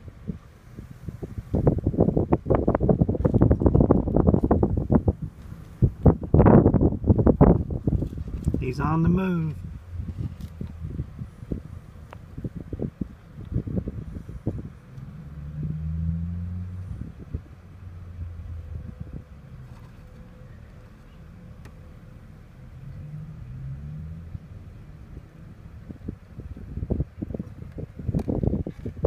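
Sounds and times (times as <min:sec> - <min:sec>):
low engine rumble: 0:00.0 - 0:29.0.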